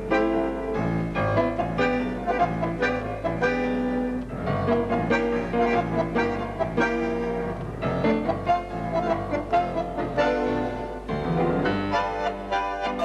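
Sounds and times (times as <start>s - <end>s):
bandoneons: 0.0s - 13.0s
piano: 0.0s - 13.0s.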